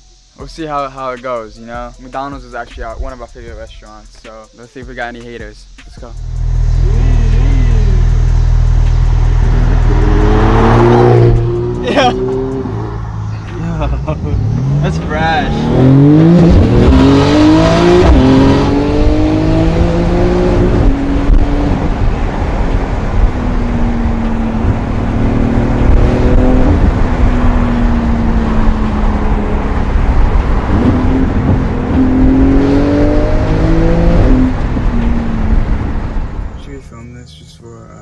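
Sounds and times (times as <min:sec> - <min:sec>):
sports car engine accelerating: 0:06.0 - 0:37.0.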